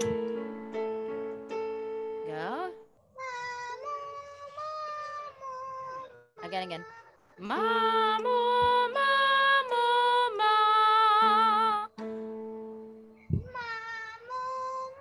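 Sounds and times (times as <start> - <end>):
held accompaniment tones: 0.0 - 2.8, 7.4 - 13.7
woman singing vocal warm-up: 7.4 - 12.0.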